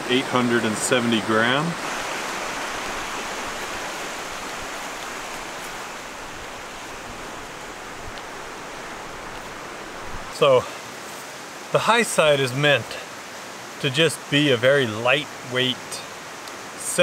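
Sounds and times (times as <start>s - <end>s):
stream rapids rushing: 0.0s - 17.0s.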